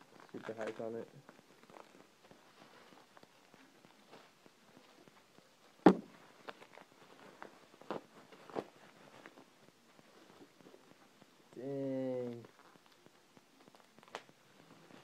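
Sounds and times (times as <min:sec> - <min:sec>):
bubble wrap crinkling: 0:00.0 - 0:11.6, 0:12.2 - 0:15.0.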